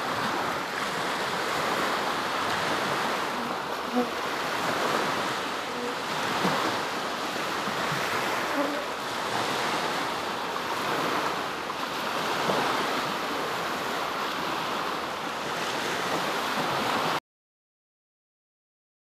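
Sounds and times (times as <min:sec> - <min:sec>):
waves washing onto sandy shore: 0:00.0 - 0:17.2
wind: 0:00.0 - 0:17.2.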